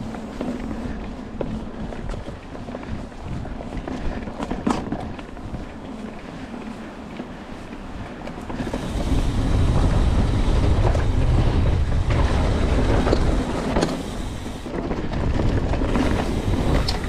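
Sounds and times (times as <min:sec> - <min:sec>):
bike knocks and rattles: 0:00.0 - 0:06.1, 0:06.7 - 0:17.0
wind buffeting microphone: 0:00.0 - 0:17.0
tyres rumbling over dirt: 0:07.8 - 0:17.0.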